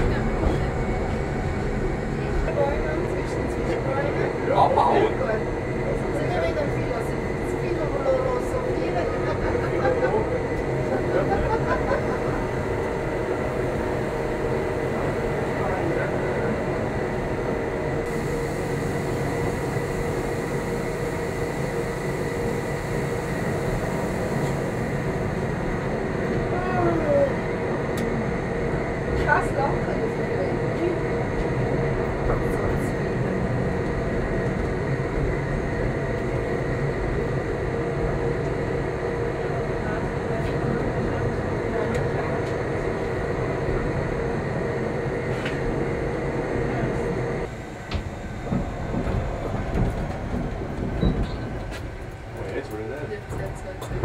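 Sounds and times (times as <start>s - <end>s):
constant whine: 0.0s - 54.0s
train running noise rumbling: 0.0s - 54.0s
brief wheel squeals: 51.0s - 51.6s.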